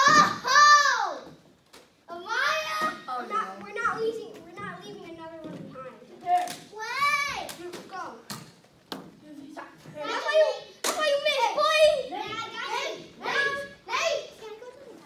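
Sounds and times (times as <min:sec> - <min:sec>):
children talking and calling out: 0:00.0 - 0:08.4, 0:09.1 - 0:15.0.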